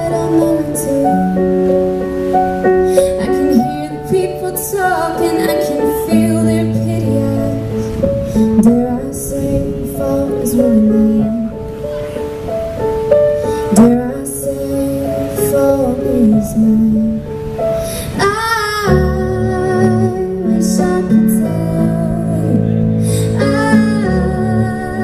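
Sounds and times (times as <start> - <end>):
keyboard chords: 0.0 - 25.0.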